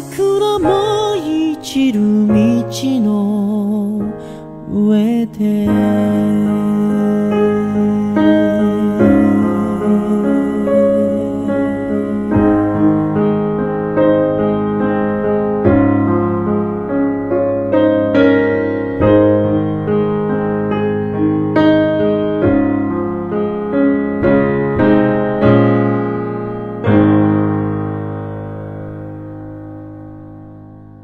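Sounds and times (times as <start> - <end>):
slow piano melody: 0.0 - 31.0.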